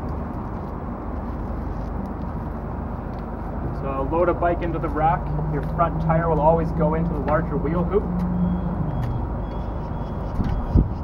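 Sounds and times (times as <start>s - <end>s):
low vehicle-like hum: 0.0s - 11.0s
outdoor background rumble: 0.0s - 11.0s.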